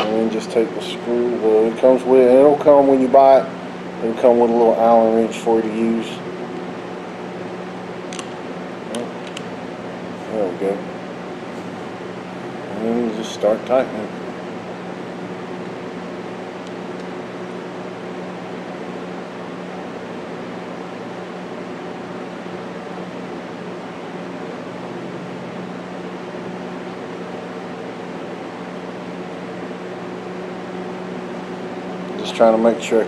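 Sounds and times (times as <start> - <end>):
ventilation hum: 0.0 - 33.0.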